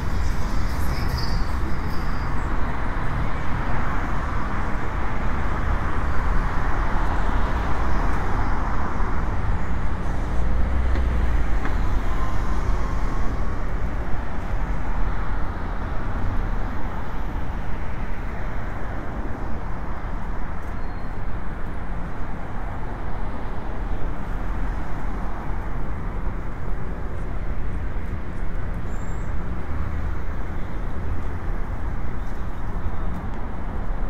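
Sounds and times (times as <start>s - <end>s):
bus passing: 0.0s - 19.8s
road traffic passing: 0.0s - 34.0s.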